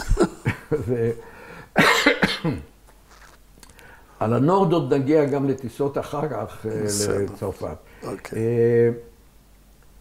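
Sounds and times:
man coughing: 1.8 - 2.7.

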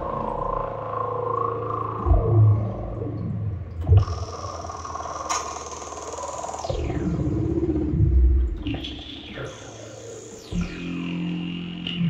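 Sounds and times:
deep synth bass notes: 0.0 - 5.4, 6.5 - 9.8, 10.5 - 12.0
gliding sustained synth tones: 0.0 - 12.0.

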